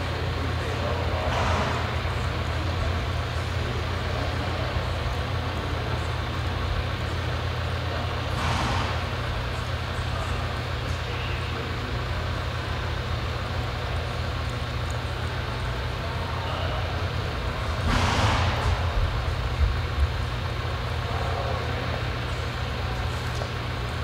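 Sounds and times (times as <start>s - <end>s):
low rumble of indoor arena: 0.0s - 24.0s.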